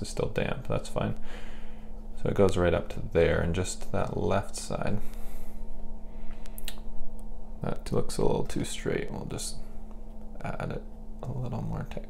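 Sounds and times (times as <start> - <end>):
low electrical hum: 0.0 - 12.0
light sharp clicks: 6.4 - 7.3.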